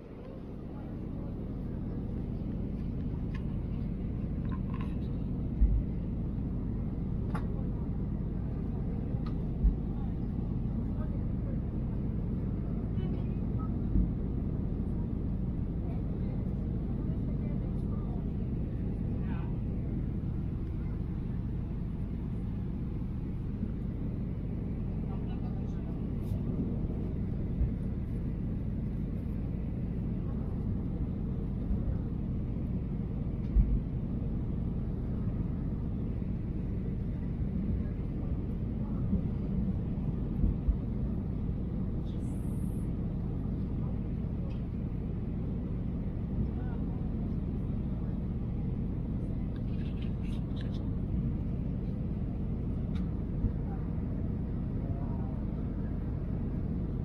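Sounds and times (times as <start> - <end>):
jet engines rumbling in cabin: 0.0 - 57.0.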